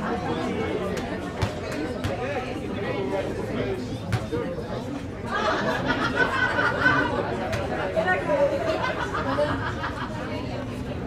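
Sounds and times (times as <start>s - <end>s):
chatter of several voices: 0.0s - 11.0s.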